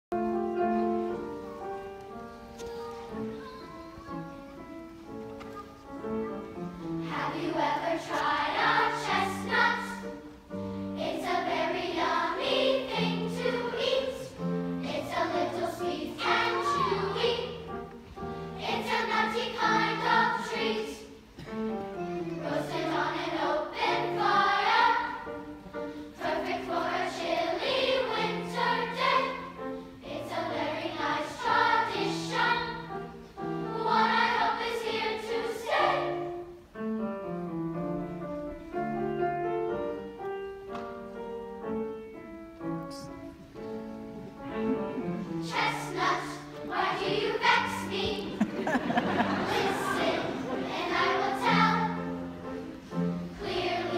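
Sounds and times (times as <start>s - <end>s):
piano accompaniment: 0.1s - 53.9s
children's choir singing: 0.2s - 36.8s, 42.9s - 53.9s.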